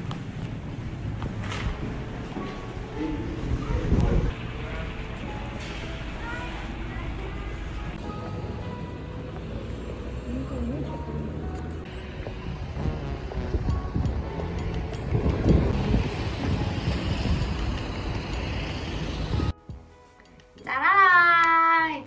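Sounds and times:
vehicles passing: 0.0 - 19.5
wind on microphone: 3.3 - 4.4, 12.3 - 19.5.

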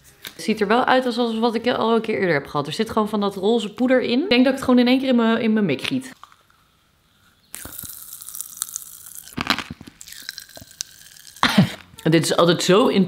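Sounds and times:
popping candy crackling in mouth: 7.5 - 12.1.

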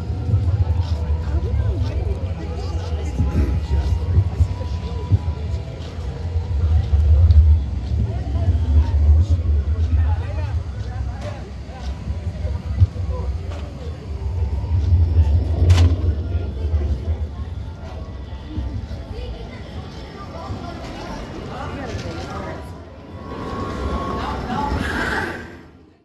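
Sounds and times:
low rumble: 0.0 - 19.2, 22.7 - 26.0
indistinct voices: 0.0 - 26.0.

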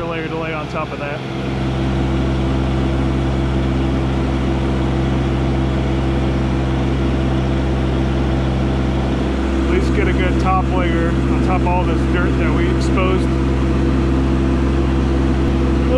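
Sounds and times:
tractor diesel engine running: 0.0 - 15.9.

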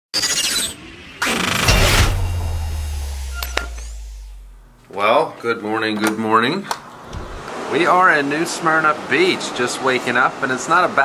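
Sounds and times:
deep bass boom: 1.6 - 4.8.

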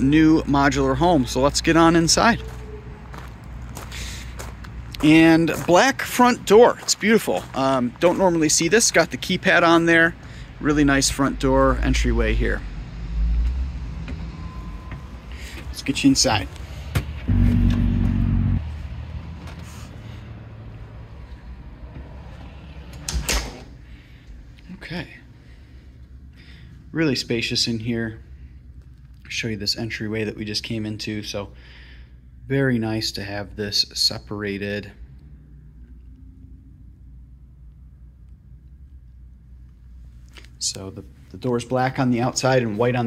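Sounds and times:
low steady rumble: 9.3 - 19.2
low hum: 10.8 - 23.1.

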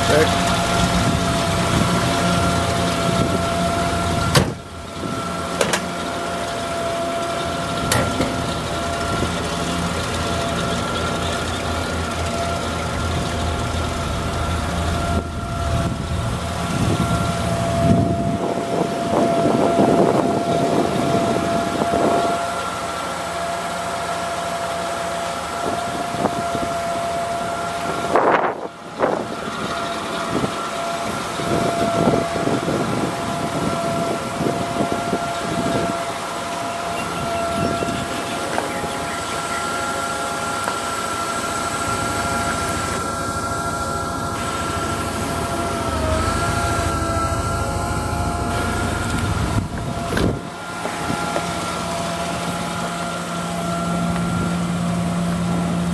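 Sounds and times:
forklift engine idling: 0.0 - 55.9
high whine: 0.0 - 55.9.

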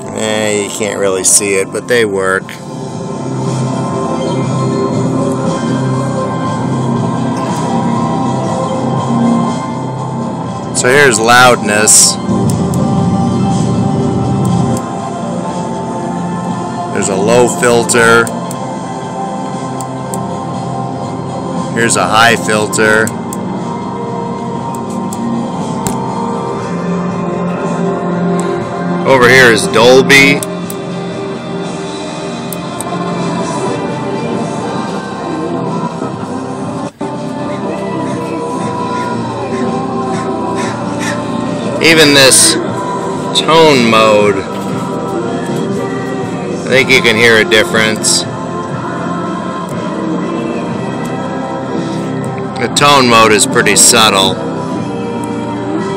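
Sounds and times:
radio music through stereo: 10.8 - 12.6, 16.9 - 18.4, 21.8 - 23.2, 29.0 - 30.5, 32.8 - 48.3.

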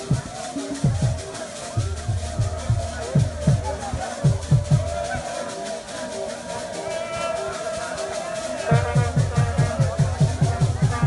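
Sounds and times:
deep drum beats: 0.0 - 5.6, 8.6 - 11.0
group singing: 0.0 - 11.0
rhythmic percussion: 0.0 - 11.0.

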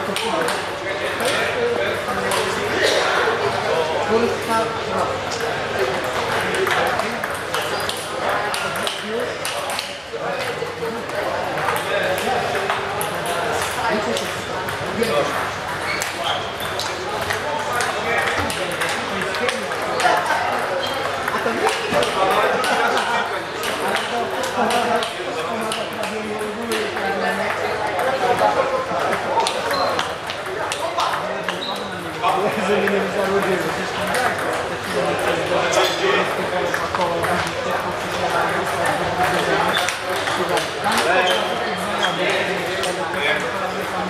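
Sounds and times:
table tennis balls clicking: 0.0 - 1.5, 2.1 - 2.6, 5.4 - 44.0.

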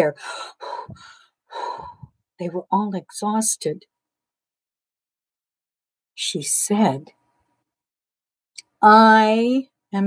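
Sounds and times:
woman panting: 0.2 - 2.1.

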